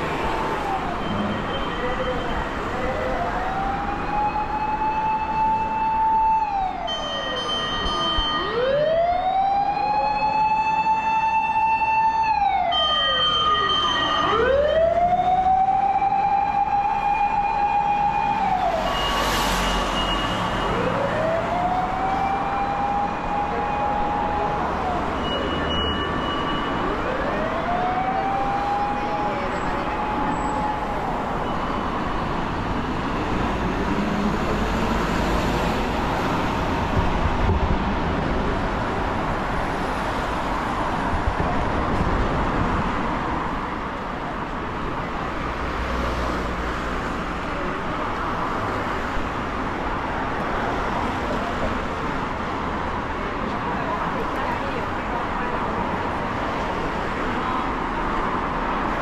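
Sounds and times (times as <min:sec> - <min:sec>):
siren wailing: 0:00.0 - 0:32.0
street traffic: 0:00.0 - 0:59.0.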